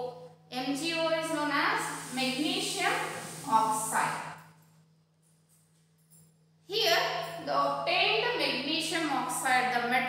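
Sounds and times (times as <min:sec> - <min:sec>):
person speaking: 0:00.7 - 0:04.2.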